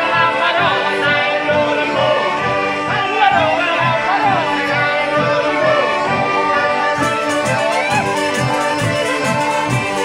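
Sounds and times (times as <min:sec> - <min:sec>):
button accordion chords: 0:00.0 - 0:10.0
person singing: 0:00.0 - 0:10.0
hand drums beating: 0:07.0 - 0:10.0.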